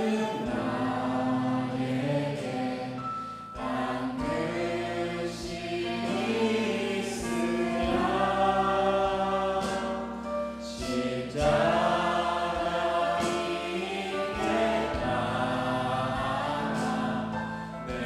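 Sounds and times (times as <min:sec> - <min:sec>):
group singing hymn in harmony: 0:00.0 - 0:18.0
instrumental backing: 0:00.0 - 0:18.0.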